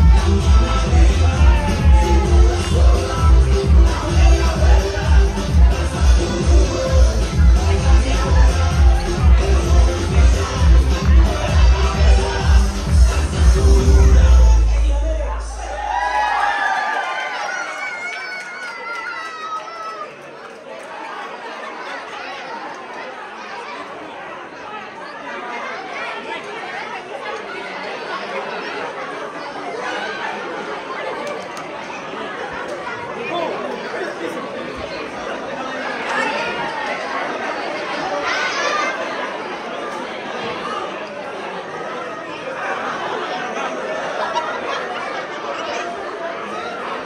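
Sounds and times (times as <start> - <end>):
crowd chatter: 0.0 - 47.0.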